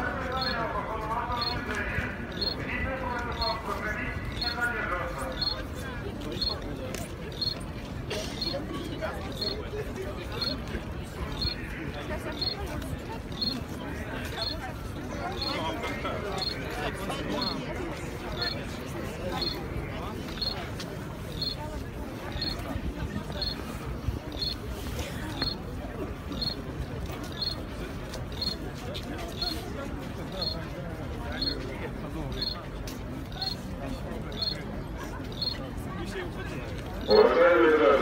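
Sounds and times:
footsteps of crowd: 0.0 - 38.0
murmur of many voices: 0.0 - 38.0.

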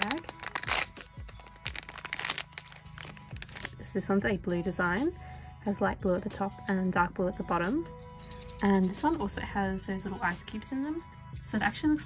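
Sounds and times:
foil bag crinkling: 0.0 - 3.8.

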